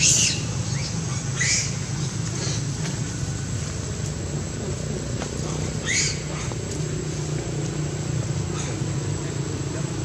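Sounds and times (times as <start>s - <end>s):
baby monkey squealing: 0.0s - 2.6s, 5.6s - 6.5s.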